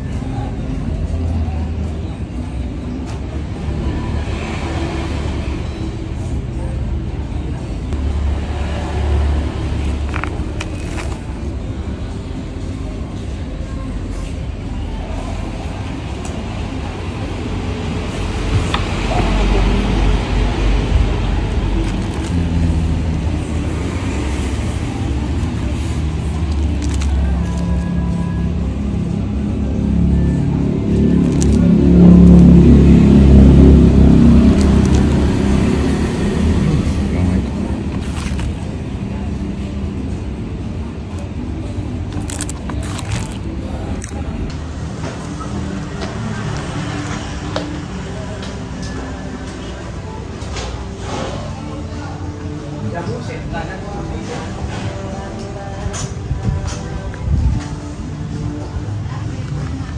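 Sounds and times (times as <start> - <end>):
music: 0.0 - 59.9.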